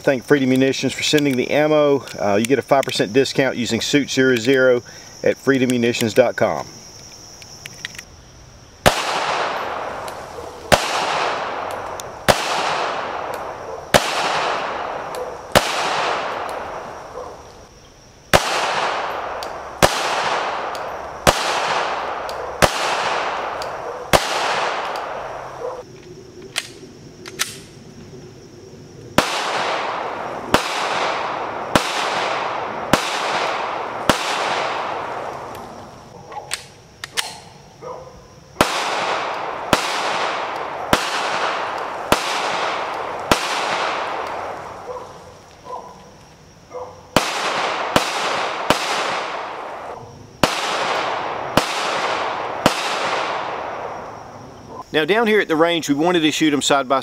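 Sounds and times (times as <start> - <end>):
pistol shots with echo: 8.8 - 17.2, 18.3 - 25.8, 29.2 - 35.5, 38.6 - 45.0, 47.1 - 54.2.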